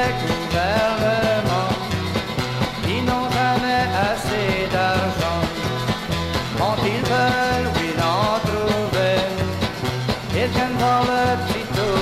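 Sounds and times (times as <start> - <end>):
country song instrumental: 0.0 - 12.0.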